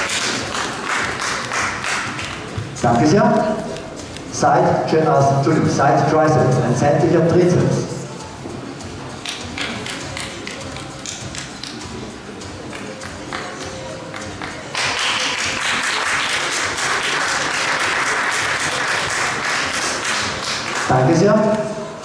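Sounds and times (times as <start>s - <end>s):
audience applause: 0.0s - 2.5s, 12.8s - 20.9s.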